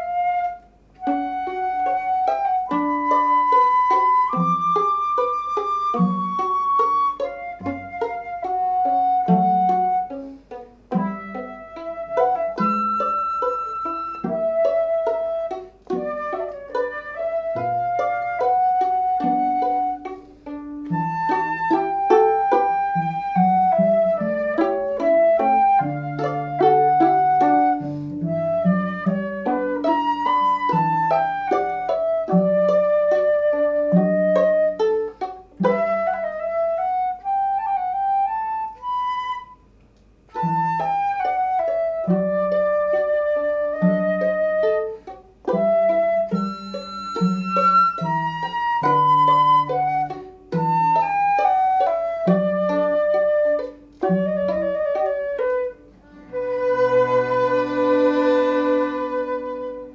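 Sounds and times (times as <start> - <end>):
flute playing classical melody: 0.0 - 59.9
lower accompaniment notes: 0.0 - 59.9.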